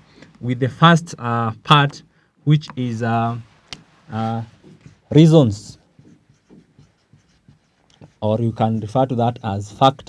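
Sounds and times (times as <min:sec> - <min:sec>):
marker writing on whiteboard: 0:03.8 - 0:10.0.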